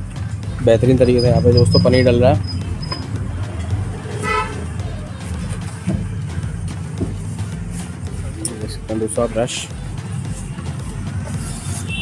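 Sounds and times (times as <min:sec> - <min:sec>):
street traffic rumble: 0:00.0 - 0:12.0
vehicle horn toot: 0:04.1 - 0:04.8, 0:11.7 - 0:12.0.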